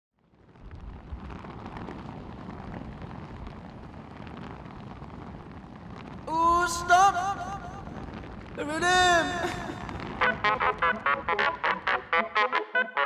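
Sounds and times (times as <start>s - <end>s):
wind buffeting microphone: 0.3s - 12.2s.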